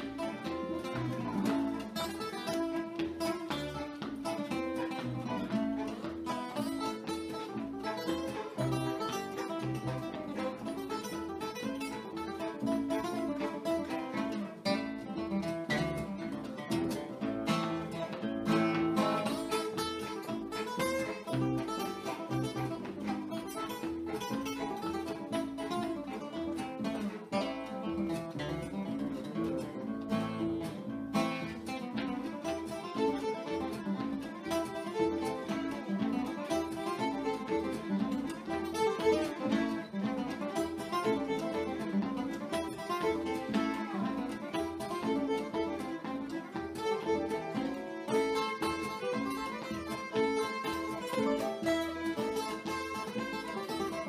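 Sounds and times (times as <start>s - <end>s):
acoustic guitars: 0.0s - 54.0s
fiddle: 0.0s - 54.0s
resonator guitar: 0.0s - 54.0s.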